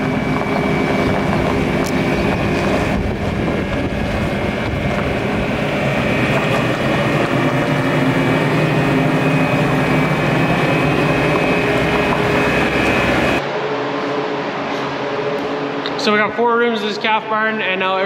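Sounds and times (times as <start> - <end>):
diesel engine running: 0.0 - 17.2
room hum: 0.0 - 18.0.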